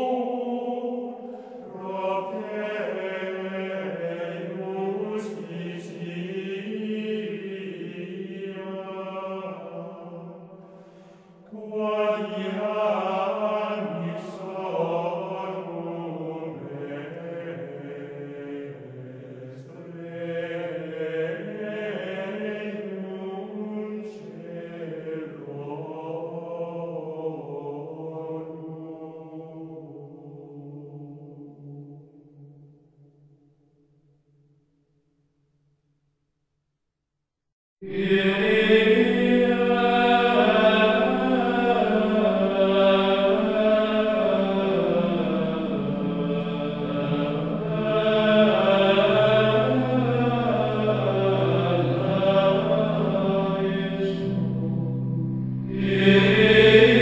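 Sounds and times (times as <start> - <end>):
voices chanting: 37.8 - 57.0.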